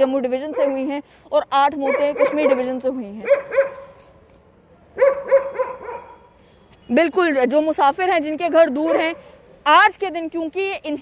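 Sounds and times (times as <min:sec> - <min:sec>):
dog barking: 0:00.5 - 0:00.9, 0:01.8 - 0:04.0, 0:05.0 - 0:06.2, 0:08.9 - 0:09.2.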